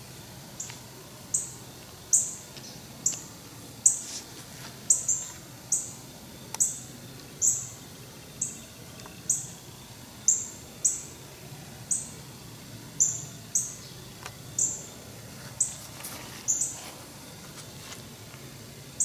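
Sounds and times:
faint background hum: 0:00.0 - 0:19.0.

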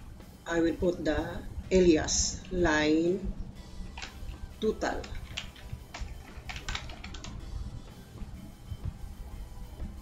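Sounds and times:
computer keyboard typing: 0:03.9 - 0:07.4.

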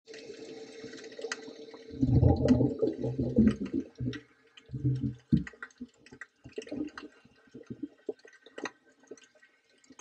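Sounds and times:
underwater burbling and sloshing: 0:00.3 - 0:10.0.

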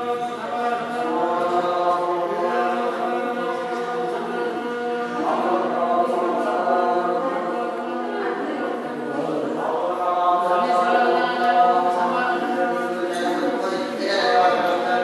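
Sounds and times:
monks chanting in a group: 0:00.0 - 0:15.0.

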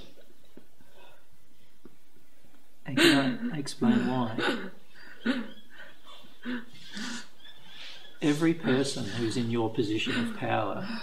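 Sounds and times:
woman sobbing: 0:03.0 - 0:11.0.

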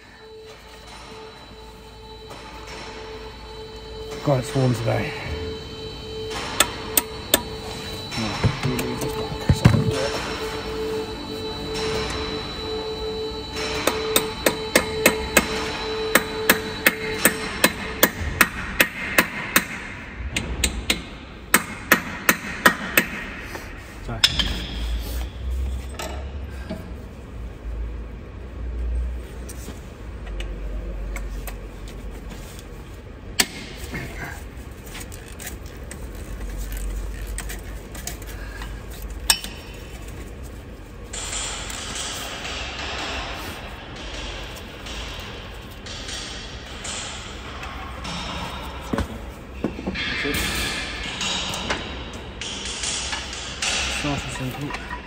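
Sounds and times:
hammer striking brake caliper: 0:05.4 - 0:23.4, 0:24.2 - 0:25.0.

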